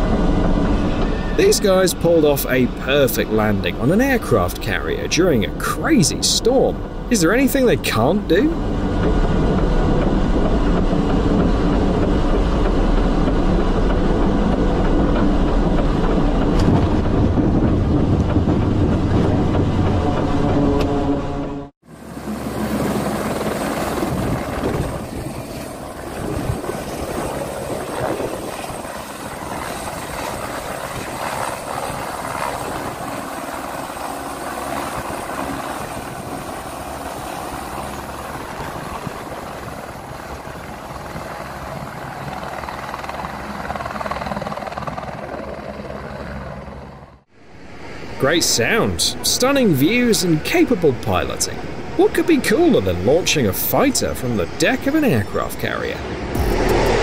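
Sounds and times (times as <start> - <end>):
helicopter hovering: 0.0 - 57.0
turboprop aircraft engine drone: 0.0 - 57.0.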